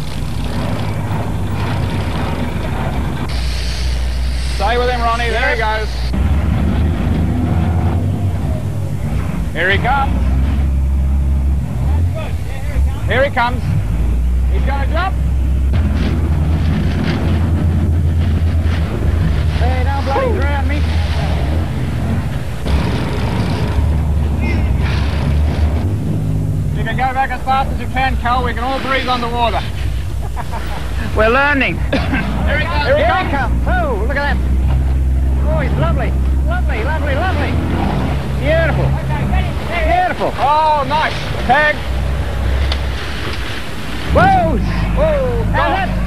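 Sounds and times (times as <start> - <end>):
boat engines rumbling: 0.0 - 46.0
people shouting excitedly: 20.0 - 20.7, 44.1 - 46.0
rushing surging water: 34.4 - 46.0.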